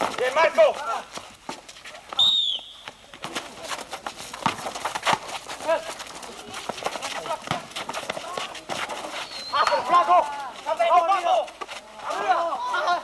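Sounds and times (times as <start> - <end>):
footsteps on hard court: 0.0 - 12.5
high whistle blast: 2.2 - 2.8
basketball bouncing: 4.3 - 9.0
people shouting: 9.5 - 13.0.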